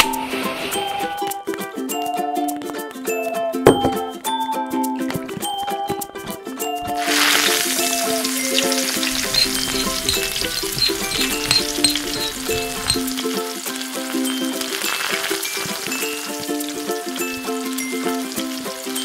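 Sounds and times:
garlic sizzling in oil: 0:06.8 - 0:19.0
fork stirring in pan: 0:07.0 - 0:13.2.

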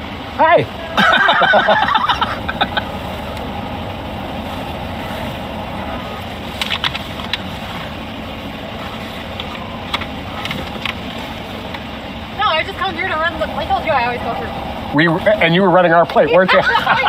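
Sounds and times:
car idling cabin noise: 0:00.0 - 0:17.0.

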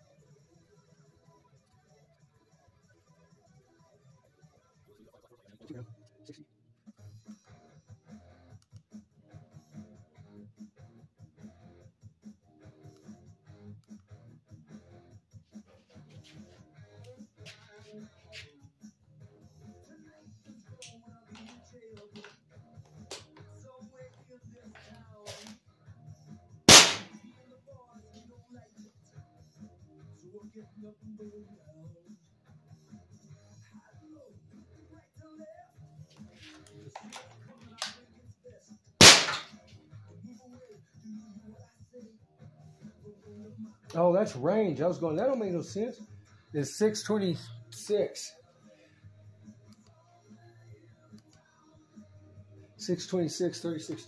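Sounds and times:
rifle handling clicks: 0:26.7 - 0:27.1
air rifle firing: 0:26.7 - 0:27.2, 0:39.0 - 0:39.6.

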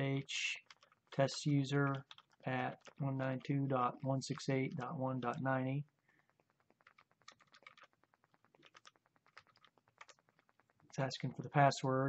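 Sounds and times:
keyboard typing clicks: 0:00.6 - 0:11.0.

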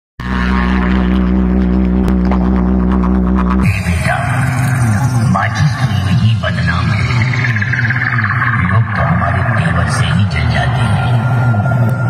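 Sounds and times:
deep bass drone: 0:00.2 - 0:12.0
gliding voice-like sound: 0:03.6 - 0:11.6.

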